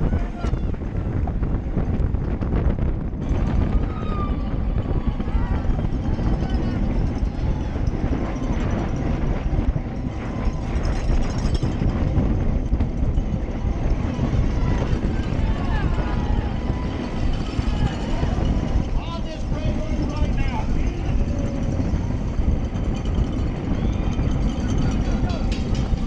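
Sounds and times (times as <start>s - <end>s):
wind rushing on microphone: 0.0s - 26.0s
spectators shouting and cheering: 3.2s - 8.3s, 13.6s - 22.3s, 23.1s - 26.0s.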